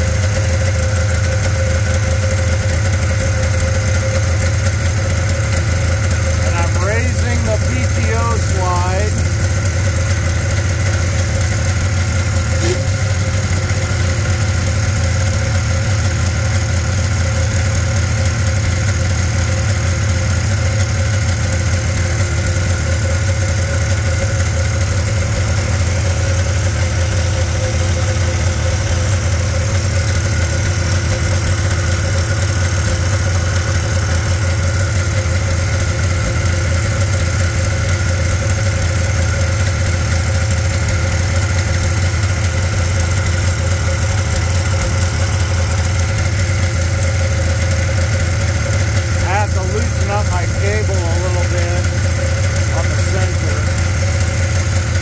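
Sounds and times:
snowmobile engine idling: 0:00.0 - 0:55.0.

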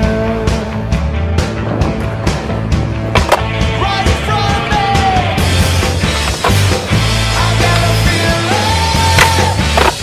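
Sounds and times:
rock music: 0:00.0 - 0:10.0
skateboard wheels rolling on concrete: 0:01.1 - 0:10.0
skateboard clacks: 0:03.1 - 0:03.5, 0:09.0 - 0:10.0.

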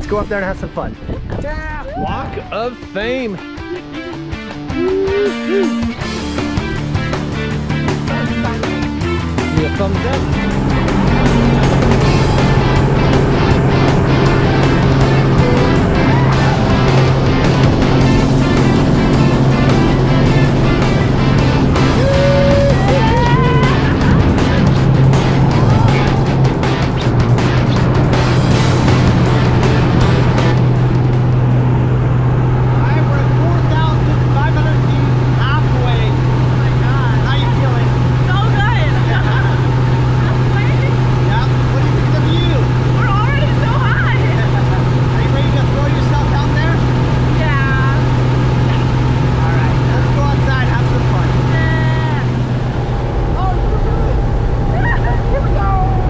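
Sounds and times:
voices: 0:01.7 - 0:06.0, 0:08.2 - 0:27.9, 0:32.4 - 0:56.0
plane engine droning: 0:02.0 - 0:56.0.

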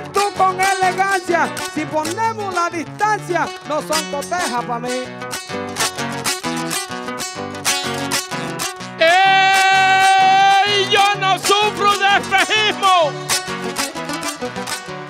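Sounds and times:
acoustic guitar strumming: 0:00.0 - 0:15.0
man singing wordless note: 0:09.0 - 0:13.2.

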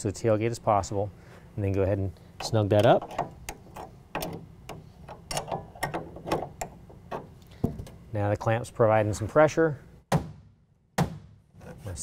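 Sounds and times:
wrench clicking and scraping: 0:02.4 - 0:08.0.

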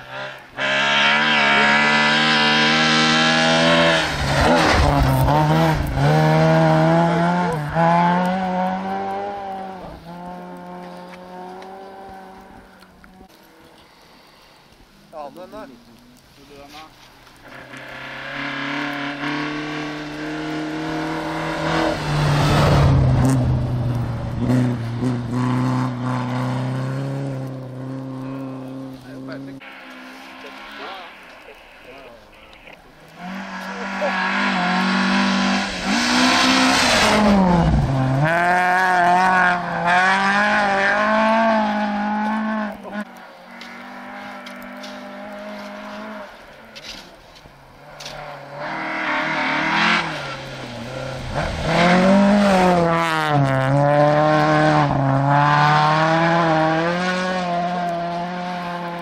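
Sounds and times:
rally car engines revving: 0:00.0 - 0:13.8, 0:17.4 - 0:59.0.

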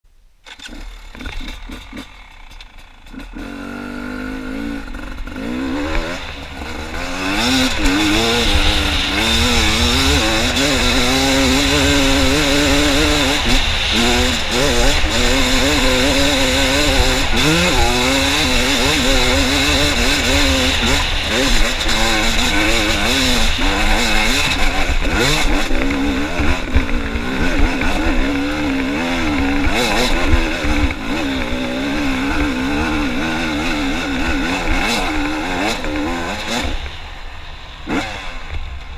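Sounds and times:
motorcycle engine revving under load: 0:00.4 - 0:37.1.

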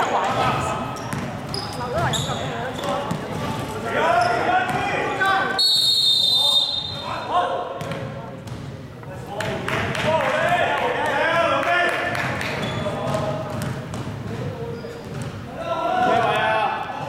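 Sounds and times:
basketball bouncing: 0:00.3 - 0:03.6, 0:07.8 - 0:08.7, 0:12.2 - 0:15.4
referee's whistle: 0:05.5 - 0:07.2
players shouting: 0:15.6 - 0:17.0.

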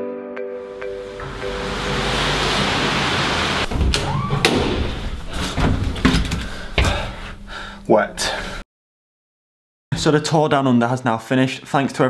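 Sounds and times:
glass door opening and swinging shut: 0:01.2 - 0:07.2.

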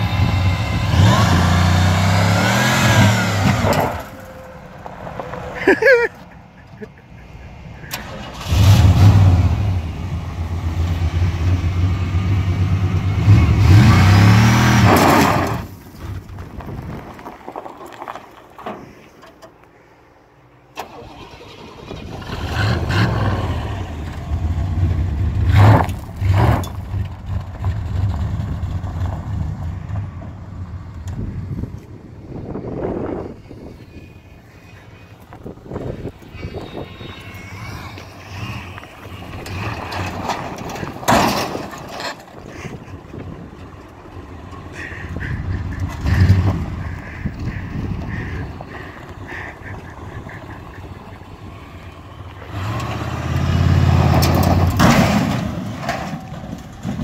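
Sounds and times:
pickup engine revving hard: 0:00.0 - 0:03.9, 0:08.0 - 0:09.8, 0:12.8 - 0:15.6.

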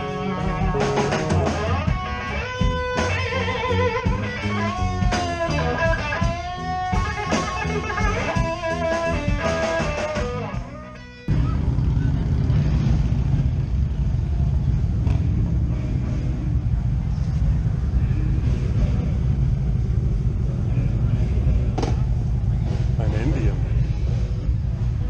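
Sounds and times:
motorcycle engines rumbling: 0:00.0 - 0:25.0
people talking: 0:20.6 - 0:24.8.

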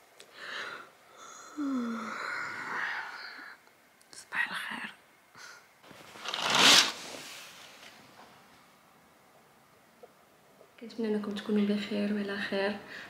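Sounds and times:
woman yawning: 0:01.5 - 0:03.2.

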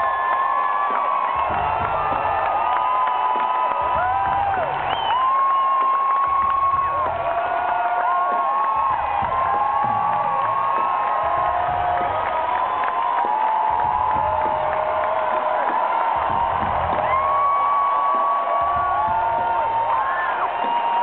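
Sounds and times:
crowd cheering and screaming: 0:00.0 - 0:21.0.

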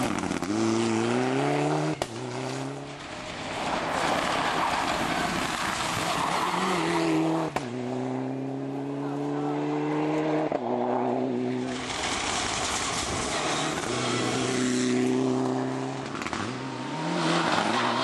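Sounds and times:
rally car engine accelerating: 0:00.0 - 0:18.0.

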